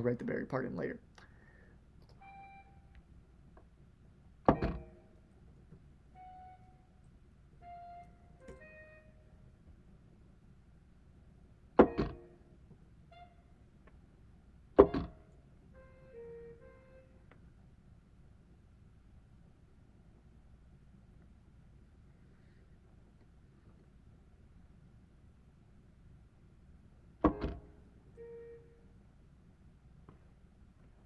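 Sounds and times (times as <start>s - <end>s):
loud thunks: 4.5s - 5.0s, 11.8s - 12.3s, 14.8s - 15.2s, 27.2s - 27.7s
single synthesized notes: 27.3s - 28.9s.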